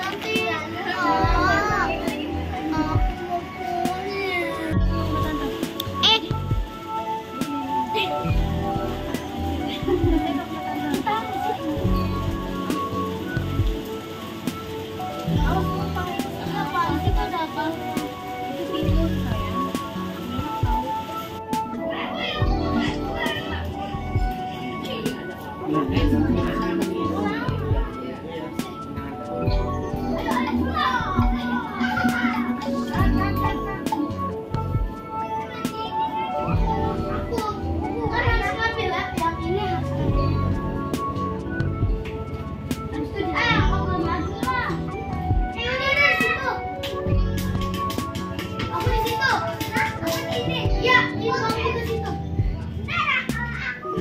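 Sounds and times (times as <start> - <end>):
background music: 0.0 - 54.0
children chattering: 0.0 - 54.0.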